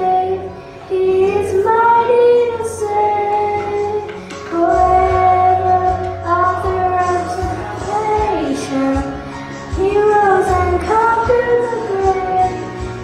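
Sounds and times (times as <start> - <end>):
girl singing into microphone: 0.0 - 13.0.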